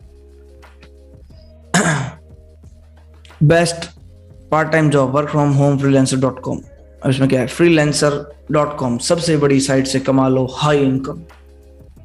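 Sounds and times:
faint background music: 0.0 - 12.0
man clearing his throat: 1.7 - 2.2.

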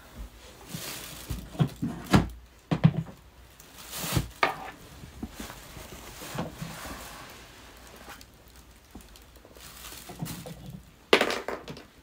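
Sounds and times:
rustling: 0.0 - 11.1
thuds of objects moved: 4.0 - 6.9.

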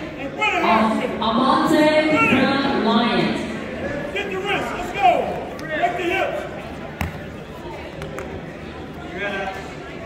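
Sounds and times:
voices echoing in a gymnasium: 0.0 - 10.0.

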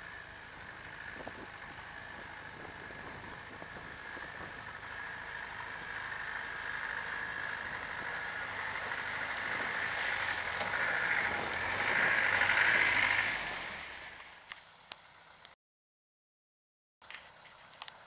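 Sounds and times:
vehicle engine running: 0.0 - 15.6.

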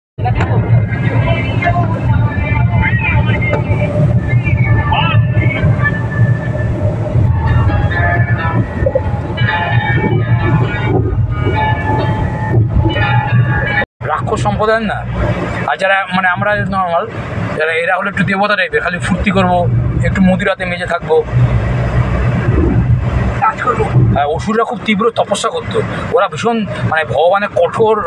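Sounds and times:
voices: 0.2 - 11.0, 22.3 - 28.0
music: 0.2 - 13.8
car engine and road rumble: 0.2 - 28.0.

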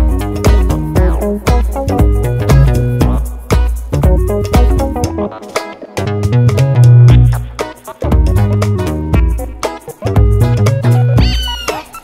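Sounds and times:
upbeat instrumental music: 0.0 - 12.0
cat meowing: 11.2 - 12.0.

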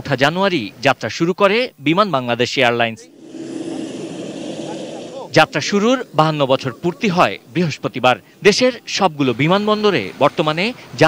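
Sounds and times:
jet engines rumbling: 2.9 - 10.0.

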